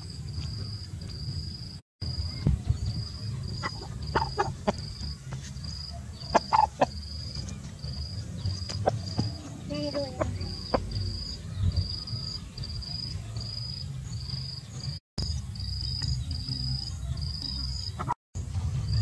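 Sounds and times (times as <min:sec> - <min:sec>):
insect chirping: 0:00.0 - 0:18.2
low outdoor rumble: 0:00.0 - 0:19.0.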